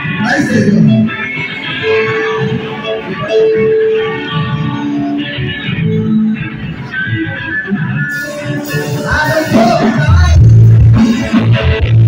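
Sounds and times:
electric guitar held notes: 0.0 - 12.0
live band instrumental music: 0.0 - 12.0.

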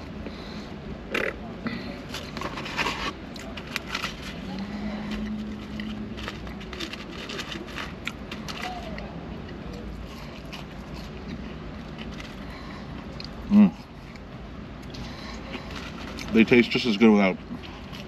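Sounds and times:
paper tray crinkling: 2.1 - 9.0.

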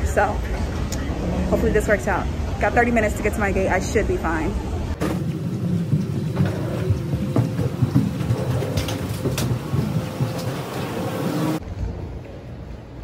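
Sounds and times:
terminal ambience: 0.0 - 11.6
aircraft machinery rumble and hum: 4.6 - 13.0
soft footsteps: 5.0 - 11.6.

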